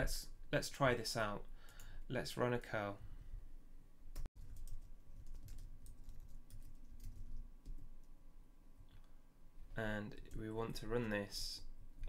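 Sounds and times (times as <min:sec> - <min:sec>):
typing on a keyboard: 0:04.2 - 0:07.9.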